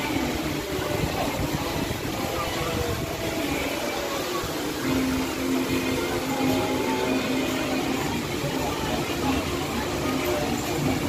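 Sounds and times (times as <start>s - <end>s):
carousel ride low hum: 0.0s - 11.0s
murmur of crowd voices: 0.0s - 11.0s.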